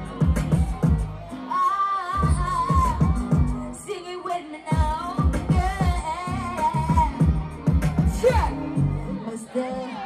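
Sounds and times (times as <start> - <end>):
dancehall beat with bass hits: 0.0 - 10.0
woman singing into a microphone: 1.4 - 10.0.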